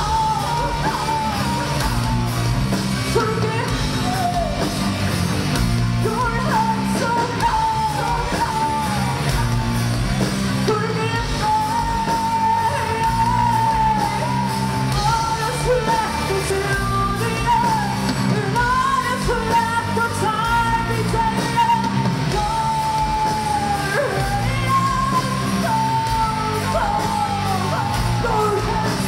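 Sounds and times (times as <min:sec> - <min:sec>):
live metal band playing: 0:00.0 - 0:29.0.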